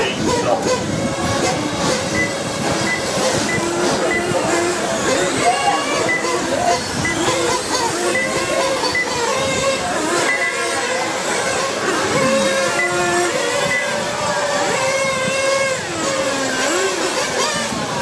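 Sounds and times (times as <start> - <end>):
toy motorcycle motors whining: 0.0 - 18.0.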